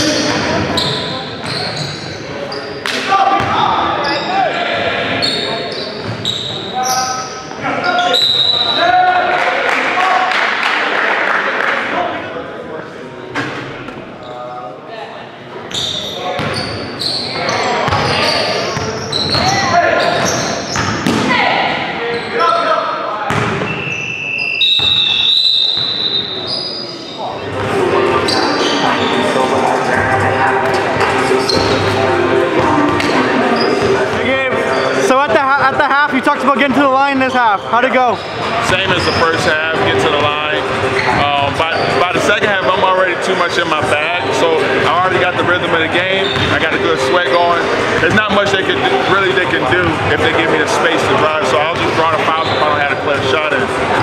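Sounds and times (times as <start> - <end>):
sneaker squeaks: 0.0 - 4.5, 5.1 - 8.9, 15.6 - 29.6, 30.6 - 35.3, 36.6 - 44.6, 45.9 - 49.0, 51.0 - 53.7.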